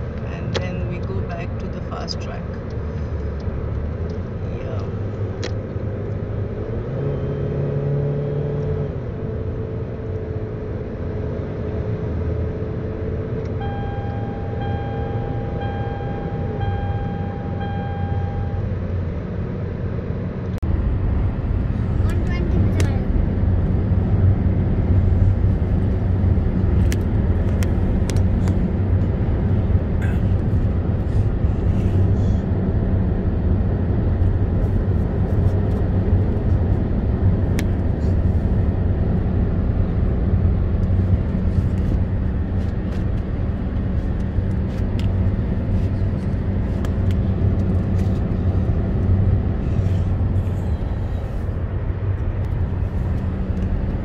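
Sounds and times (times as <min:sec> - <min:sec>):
engine and tyre rumble in car: 0:00.0 - 0:54.0
electronic beep: 0:13.6 - 0:18.7.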